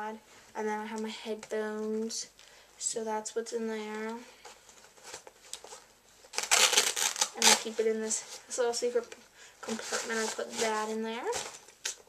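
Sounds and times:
scratchy fabric rustle: 9.6s - 11.7s.

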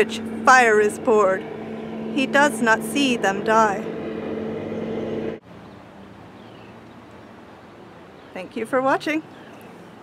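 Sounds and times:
low engine drone: 0.0s - 7.6s
faint outdoor background noise: 0.0s - 10.0s.

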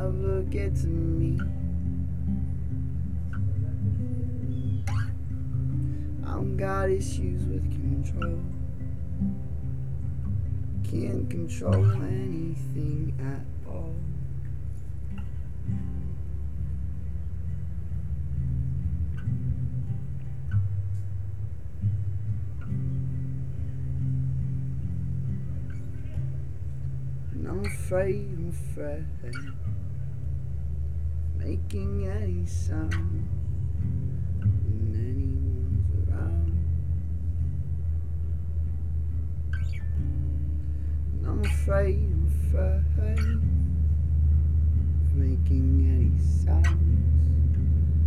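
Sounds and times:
person singing: 0.0s - 1.7s, 6.2s - 8.8s, 10.8s - 14.2s, 27.3s - 29.7s, 34.5s - 36.7s, 41.1s - 43.6s
acoustic guitar playing: 0.0s - 48.0s
low rumble: 0.0s - 48.0s.

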